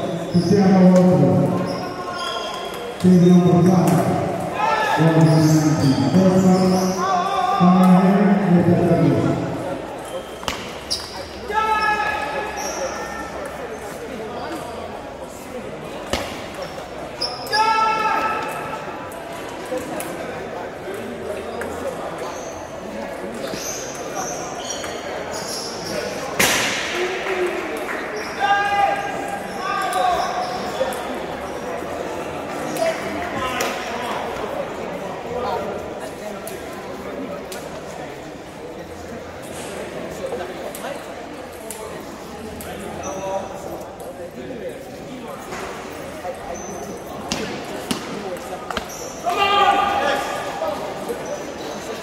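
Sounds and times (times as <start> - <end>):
chatter and shouts of people: 0.0 - 52.0.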